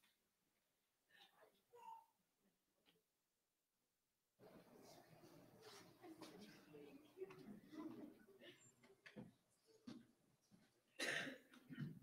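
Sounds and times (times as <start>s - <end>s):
person coughing: 11.0s - 12.0s.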